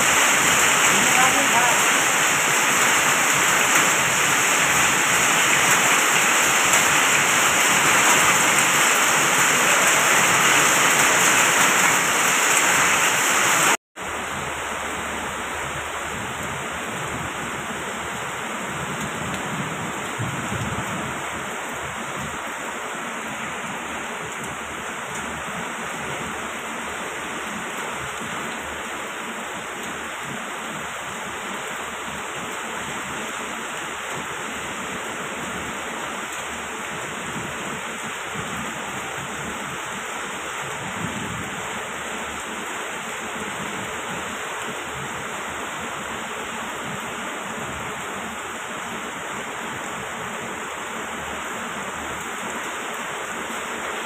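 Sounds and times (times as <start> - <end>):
heavy rain and hail: 0.0 - 54.0.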